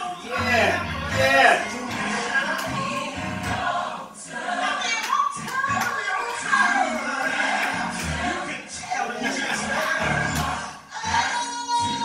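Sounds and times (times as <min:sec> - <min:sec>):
gospel choir singing held notes: 0:00.0 - 0:12.0.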